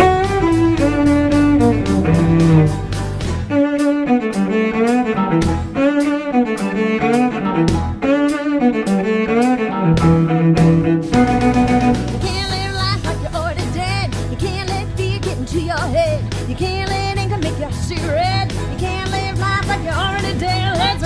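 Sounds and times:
drum beat: 0.0 - 3.5, 11.1 - 15.4
low bass part: 0.0 - 3.6, 9.8 - 12.5
bowed cello melody: 0.0 - 12.9.

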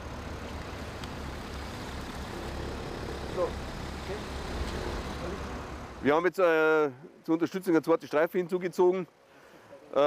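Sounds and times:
road traffic rumble: 0.0 - 6.2.

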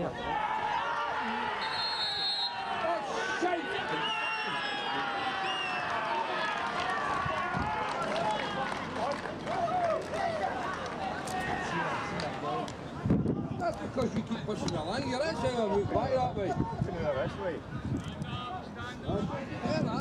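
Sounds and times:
men shouting and calling: 0.0 - 8.7, 9.4 - 17.6.

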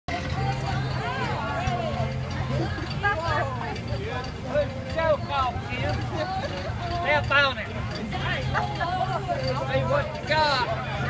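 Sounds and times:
voices talking: 0.2 - 11.0.

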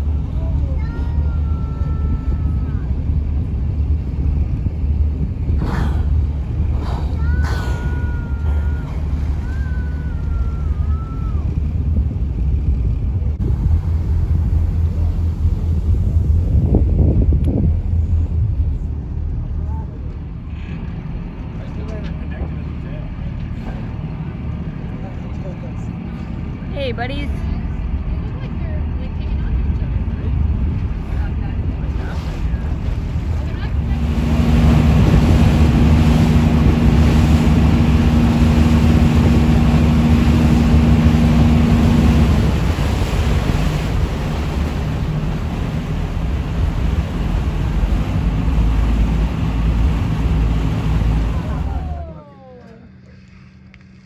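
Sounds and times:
wind buffeting microphone: 0.0 - 52.2
boat motor humming: 0.0 - 54.0
water washing: 28.8 - 52.2.

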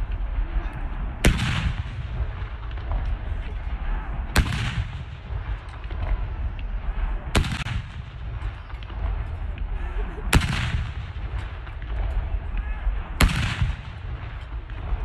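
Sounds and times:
constant low rumble: 0.0 - 15.0
field gun reports with echo: 0.0 - 15.0.

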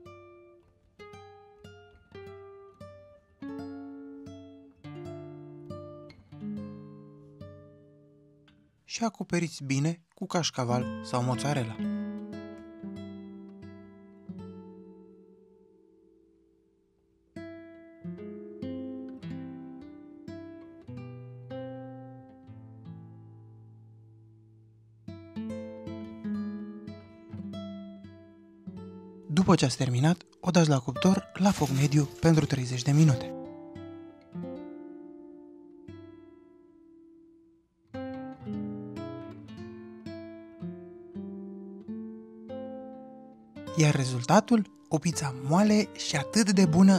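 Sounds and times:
plucked acoustic guitar: 0.0 - 8.7, 9.4 - 16.3, 17.3 - 46.9.

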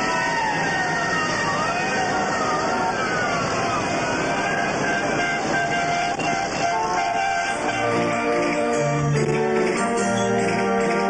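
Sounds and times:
steady horn-like tones: 4.3 - 11.0.

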